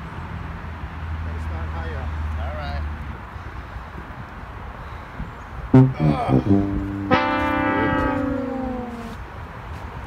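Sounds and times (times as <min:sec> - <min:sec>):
sad trombone note: 0:05.8 - 0:09.2.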